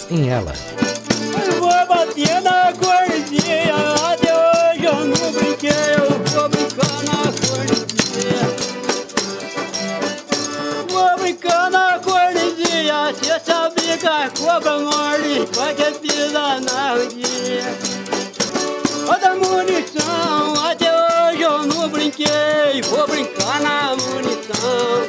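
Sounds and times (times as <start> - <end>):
man singing: 0.0 - 9.0, 10.8 - 18.2, 19.0 - 25.0
piano accordion: 0.0 - 25.0
rattling hand percussion: 0.0 - 25.0.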